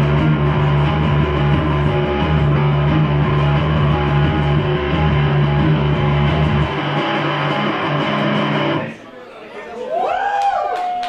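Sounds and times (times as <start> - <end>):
electric bass guitar: 0.0 - 9.0
live rock music: 0.0 - 9.0.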